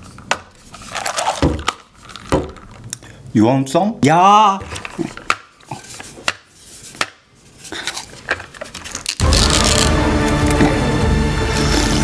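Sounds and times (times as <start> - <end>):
loud music: 9.2 - 12.0.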